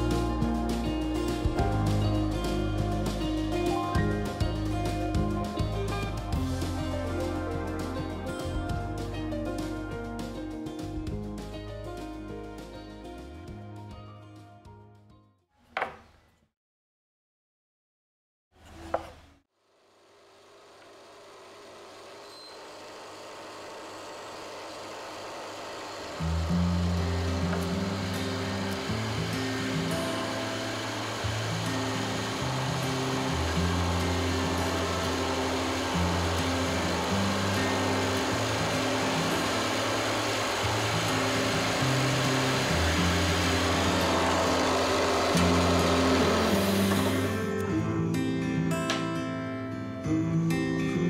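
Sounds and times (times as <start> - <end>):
bass line: 0.0 - 14.1, 32.4 - 48.1
background music: 0.0 - 15.2, 26.2 - 51.0
power drill boring into wood: 21.8 - 47.6.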